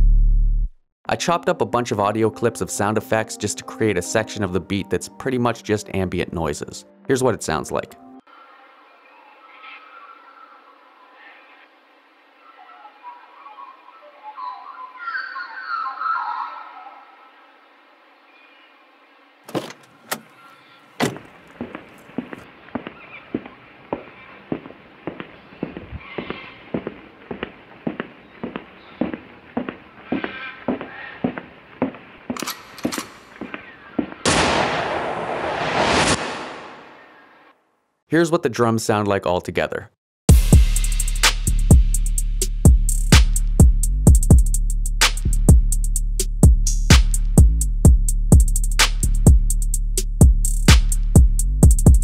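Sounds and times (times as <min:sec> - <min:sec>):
soft nature ambience: 0:08.3 - 0:35.0
car door shutting: 0:19.5 - 0:20.4, 0:21.0 - 0:21.4
footsteps: 0:19.5 - 0:34.2
burst of noise: 0:34.2 - 0:37.4.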